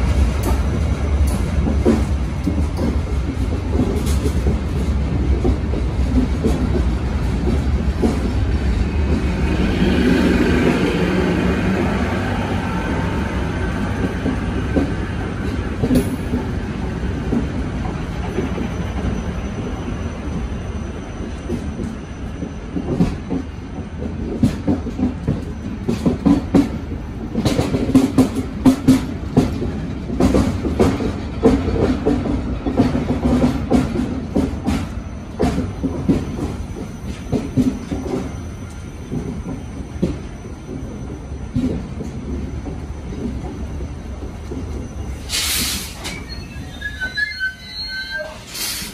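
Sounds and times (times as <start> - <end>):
train wheels rumbling on rail: 0.0 - 48.9.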